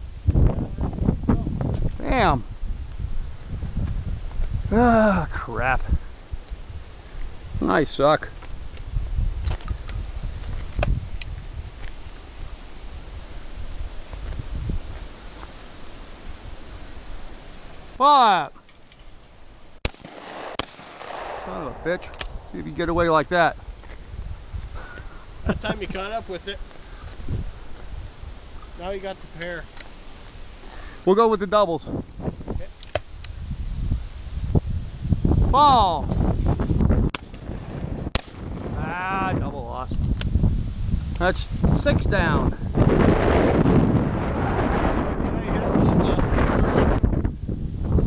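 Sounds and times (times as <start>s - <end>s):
wind buffeting microphone: 0.0s - 18.0s, 20.0s - 48.0s
shotgun shots: 19.8s - 22.6s.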